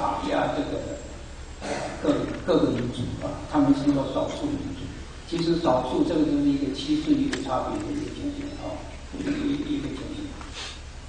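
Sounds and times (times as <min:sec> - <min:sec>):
short breath: 0:10.5 - 0:10.9.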